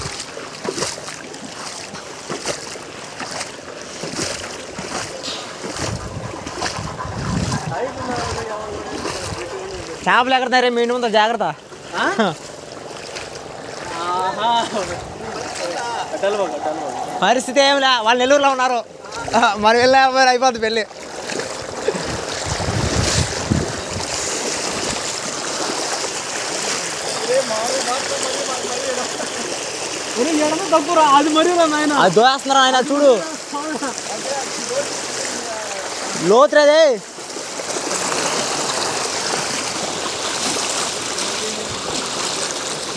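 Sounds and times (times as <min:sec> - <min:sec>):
floodwater rushing: 0:00.0 - 0:42.9
low rumbling: 0:05.1 - 0:10.2, 0:12.5 - 0:20.8, 0:21.4 - 0:25.5.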